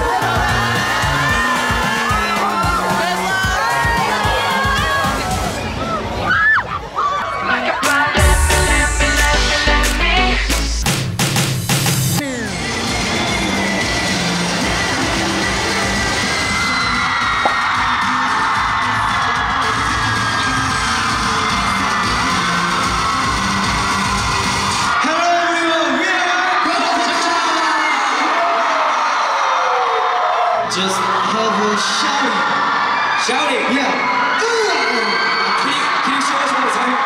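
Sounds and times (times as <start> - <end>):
pop music with steady beat: 0.0 - 5.4, 7.5 - 12.8
crowd screaming and cheering: 0.0 - 37.0.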